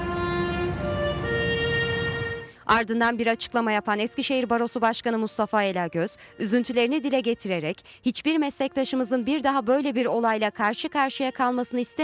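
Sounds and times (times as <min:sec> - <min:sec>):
slow bowed string melody: 0:00.0 - 0:02.6.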